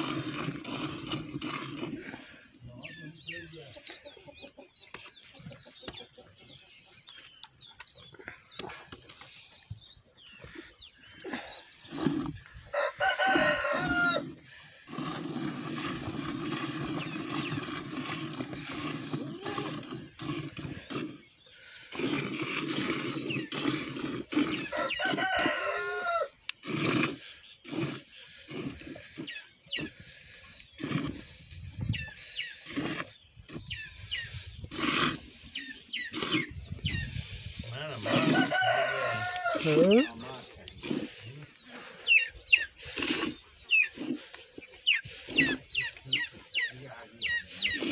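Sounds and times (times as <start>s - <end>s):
rooster crowing: 12.7s - 14.3s, 24.7s - 26.3s, 38.0s - 40.1s.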